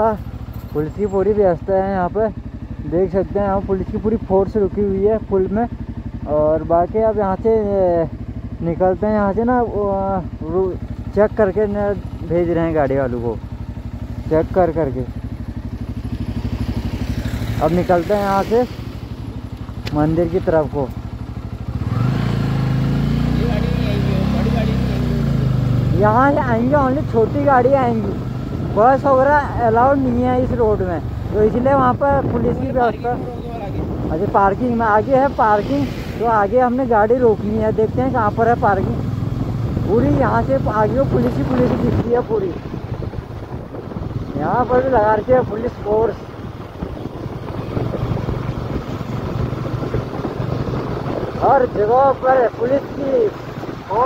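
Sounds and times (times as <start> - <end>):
motorcycle engine: 0.0 - 54.0
wind noise: 31.2 - 36.3, 38.8 - 54.0.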